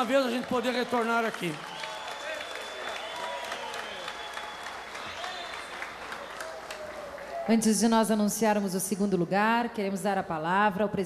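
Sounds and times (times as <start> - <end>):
audience applauding: 0.0 - 7.8.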